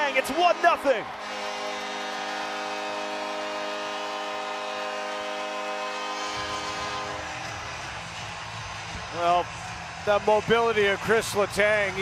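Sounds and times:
fans cheering and clapping: 0.0 - 12.0
goal horn chord: 0.2 - 7.7.

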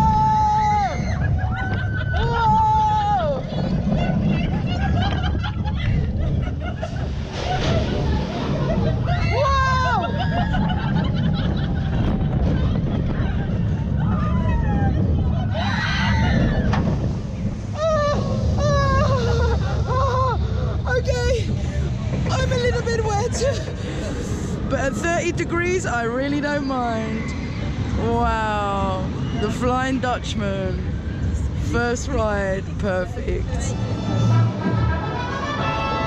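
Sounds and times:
wind and ride rumble: 0.0 - 36.0.

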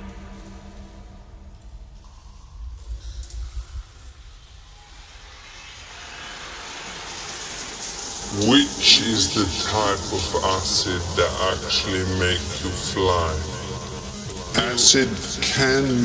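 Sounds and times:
rising noise sweep: 0.0 - 16.0
synth parts: 7.6 - 16.0.

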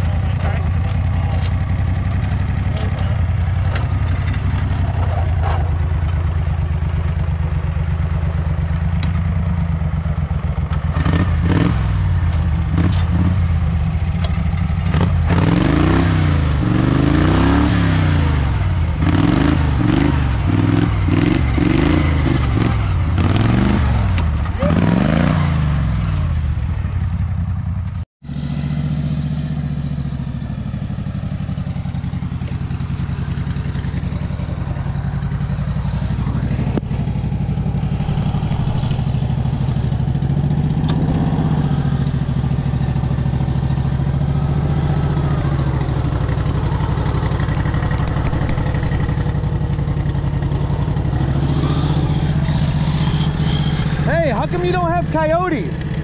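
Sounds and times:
tractor engine running steadily: 0.0 - 56.0
small engine revving: 10.8 - 13.7, 14.8 - 26.4, 33.7 - 55.1.

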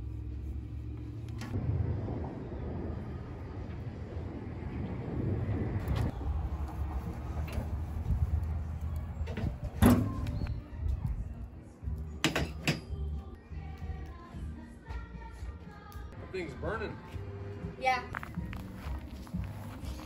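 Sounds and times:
low steady rumble: 0.0 - 9.2
metal grill lid shutting: 12.2 - 12.9.

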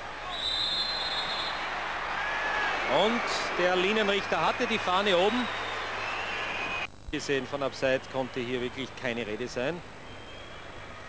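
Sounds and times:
stadium crowd noise: 0.0 - 11.0
referee's whistle: 0.2 - 1.8, 4.1 - 6.9, 10.0 - 10.8.

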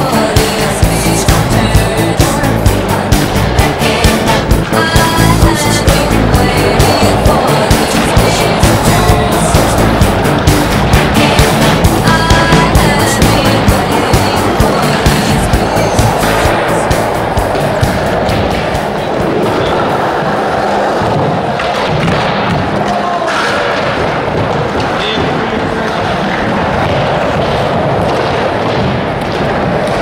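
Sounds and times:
music with steady beat: 0.0 - 20.1
skateboard wheels rolling on concrete: 0.0 - 30.0.

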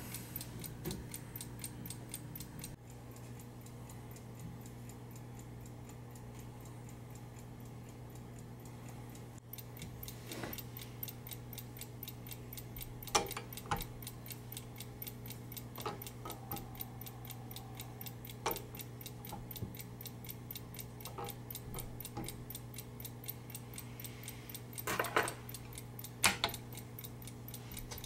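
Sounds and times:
clockwork time lock ticking: 0.0 - 28.0.

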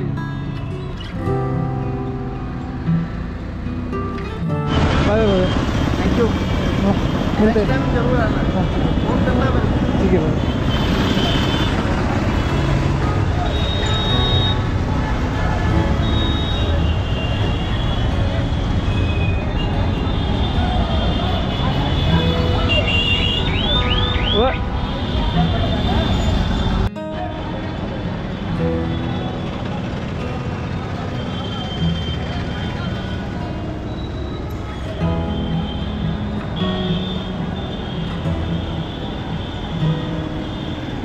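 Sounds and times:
crowd of voices talking: 0.0 - 41.0
vehicle engines running: 2.0 - 41.0.

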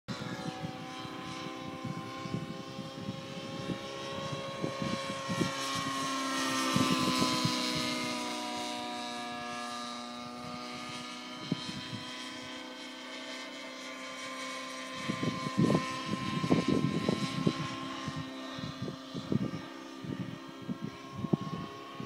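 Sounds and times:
model helicopter rotor whine: 0.1 - 22.0.

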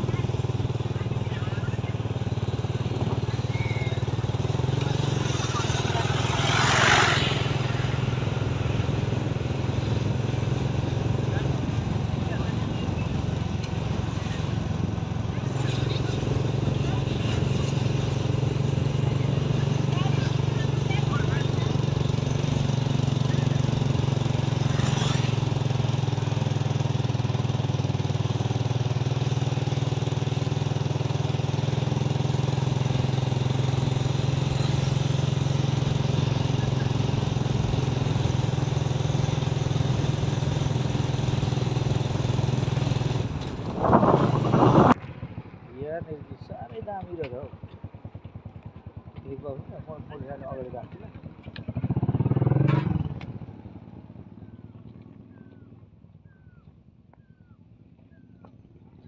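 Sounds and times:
road noise: 0.0 - 59.0
vehicle engine drone: 0.0 - 59.0.

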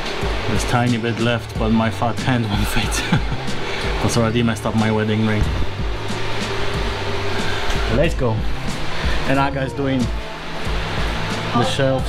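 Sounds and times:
background music: 0.0 - 12.0
steady rushing noise: 0.0 - 12.0.

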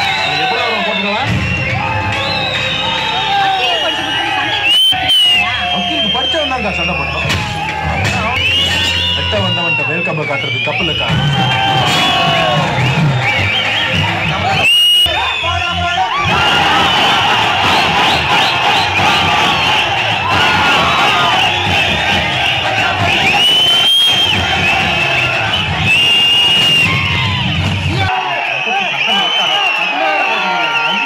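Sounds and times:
audience cheering and shouting: 0.0 - 31.0
high whistles from crowd: 0.0 - 31.0
film music over speakers: 0.1 - 28.1.

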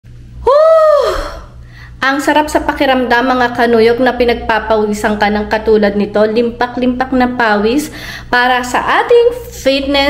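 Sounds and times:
low steady hum: 0.1 - 10.0.

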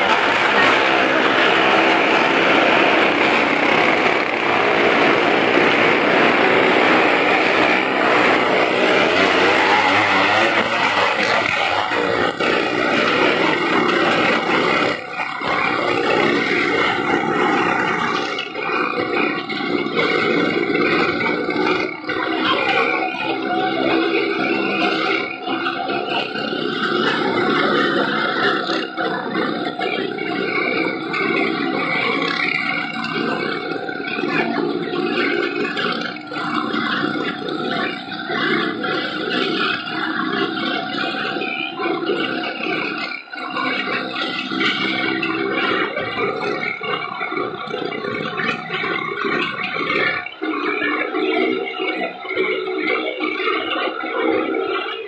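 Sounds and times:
car and motorcycle engines revving: 0.0 - 55.0.

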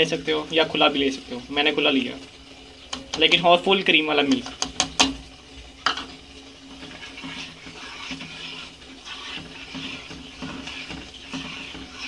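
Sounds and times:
metal spoon scraping steel bowl: 6.8 - 12.0.

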